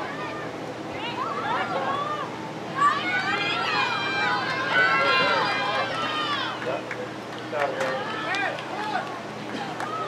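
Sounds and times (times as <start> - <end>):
people shouting and calling out: 0.0 - 6.6.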